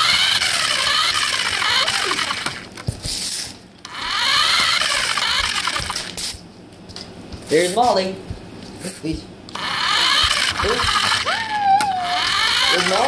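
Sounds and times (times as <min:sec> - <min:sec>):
toy car motor whining: 0:00.0 - 0:02.7, 0:03.9 - 0:06.3, 0:09.5 - 0:13.0.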